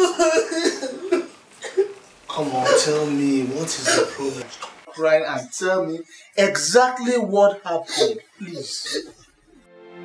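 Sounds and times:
woman sobbing: 0:00.0 - 0:01.9.

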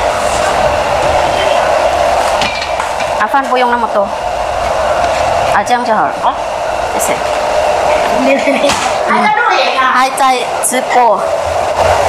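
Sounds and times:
steady rushing noise: 0:00.0 - 0:12.0
woman's voice: 0:03.2 - 0:04.2, 0:05.5 - 0:07.3, 0:08.0 - 0:11.3.

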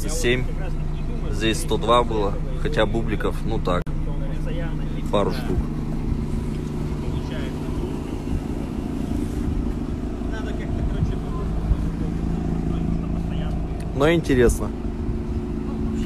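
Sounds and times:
rotary engine idling: 0:00.0 - 0:16.0.

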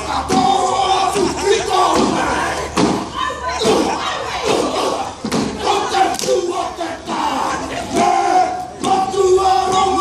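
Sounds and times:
men chanting in unison: 0:04.6 - 0:10.0.

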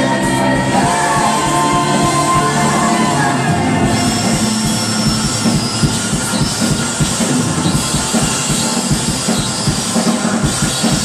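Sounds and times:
electric guitar: 0:00.0 - 0:11.0
fast drumming: 0:00.0 - 0:11.0
keyboards: 0:00.0 - 0:11.0
live rock band playing: 0:00.0 - 0:11.0.

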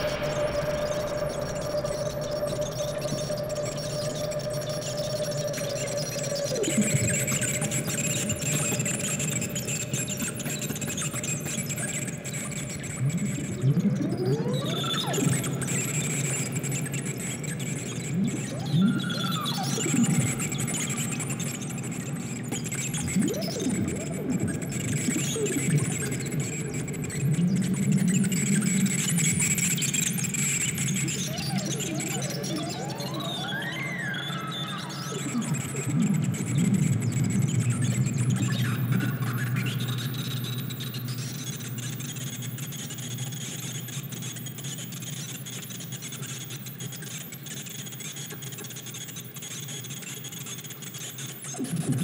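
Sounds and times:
low drone: 0:00.0 - 0:07.7
steady high whistle: 0:00.0 - 0:08.1, 0:31.2 - 0:36.1
wavering gliding tones: 0:00.0 - 0:08.8, 0:30.9 - 0:40.0
experimental electronic synthesizer music: 0:00.0 - 0:16.6, 0:28.7 - 0:42.2, 0:51.5 - 0:52.0.

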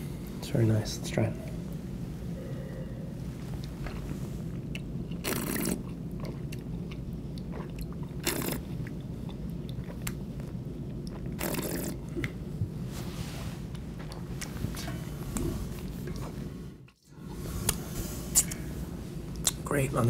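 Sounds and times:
wine sipped in the mouth: 0:05.2 - 0:05.9, 0:07.4 - 0:08.6, 0:11.4 - 0:12.3
wet mouth clicks: 0:07.4 - 0:08.6, 0:17.7 - 0:18.6.

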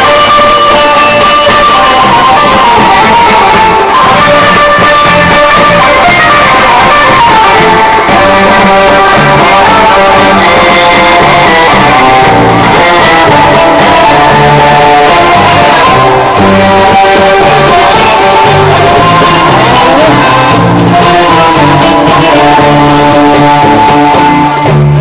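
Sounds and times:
plucked string instrument melody: 0:00.0 - 0:25.0.

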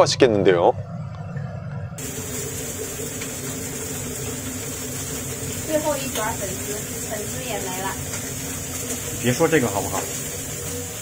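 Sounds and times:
machine hum: 0:00.0 - 0:11.0
constant high hiss: 0:02.0 - 0:11.0.

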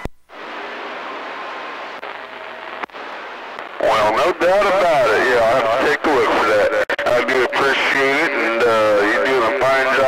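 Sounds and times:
speech over cb radio: 0:03.7 - 0:10.0.

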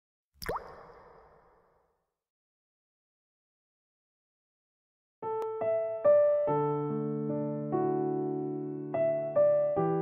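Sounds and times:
water drop plop: 0:00.4 - 0:01.8.

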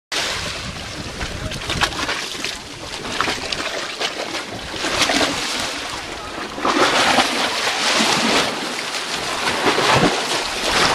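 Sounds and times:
seawater rushing and splashing: 0:00.1 - 0:10.9
wind buffeting microphone: 0:00.2 - 0:03.7.

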